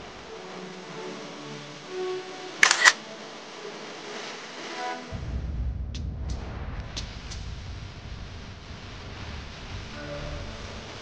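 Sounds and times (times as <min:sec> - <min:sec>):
camera shutter clicks: 0:02.6 - 0:03.0.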